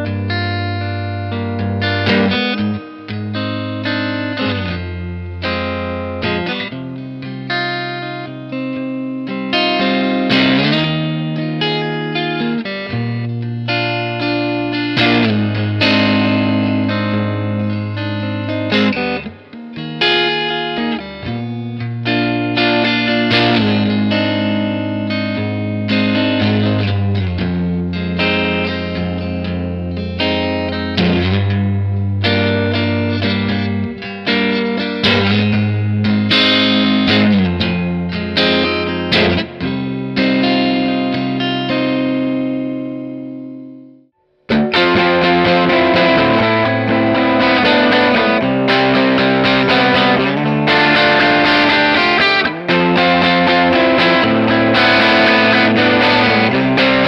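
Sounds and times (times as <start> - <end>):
electric guitar strumming: 0.0 - 57.0.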